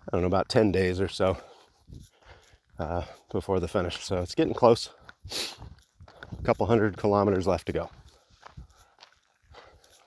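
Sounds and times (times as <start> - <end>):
footsteps on gravel path: 0.0 - 10.0.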